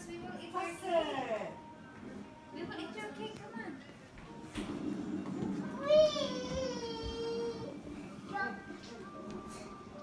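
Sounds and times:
low background murmur: 0.0s - 10.0s.

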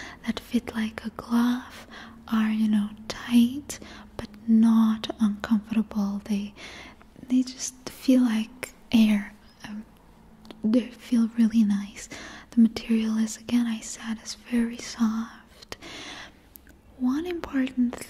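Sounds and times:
woman whispering: 0.0s - 4.3s, 7.2s - 9.9s, 10.7s - 15.8s.

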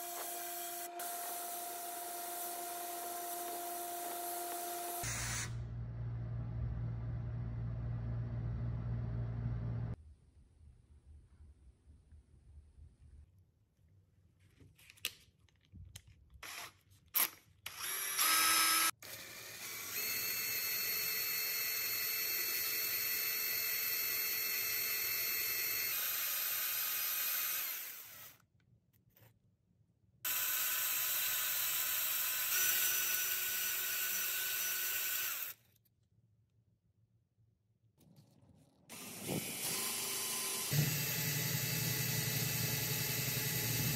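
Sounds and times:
drill motor whine: 17.7s - 28.3s, 30.3s - 35.6s, 38.9s - 43.9s.

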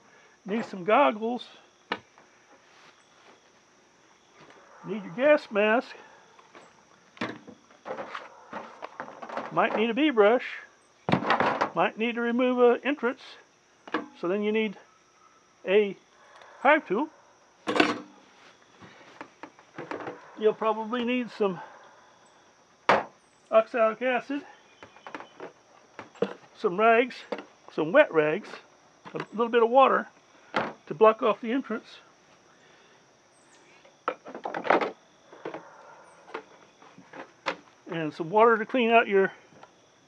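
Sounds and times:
clatter of hard objects: 7.2s - 9.8s, 19.2s - 20.2s, 34.0s - 35.6s
items rummaged in plastic tote: 7.9s - 9.9s.

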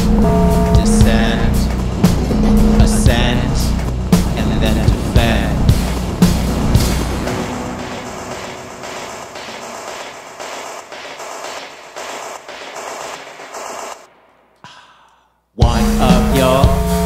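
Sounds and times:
synth indie band music: 0.0s - 9.7s, 15.6s - 17.0s
rhythmic noisy pulse: 0.0s - 14.1s.

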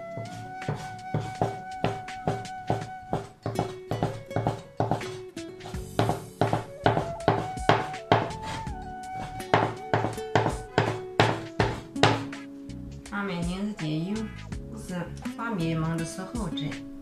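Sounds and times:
background music with melody: 0.0s - 17.0s
cleaver chopping on wooden board: 0.6s - 5.2s, 6.0s - 8.6s, 9.2s - 12.4s.

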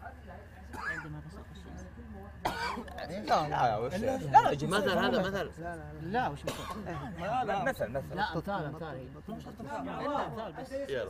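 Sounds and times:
steady low hum: 0.0s - 11.0s
man's loud cough-like outburst: 2.5s - 3.5s, 6.4s - 7.0s
men murmuring: 2.5s - 11.0s.

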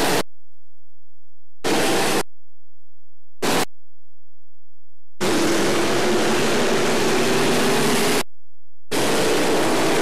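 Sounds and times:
race car engines roaring: 5.2s - 8.2s, 8.9s - 10.0s.

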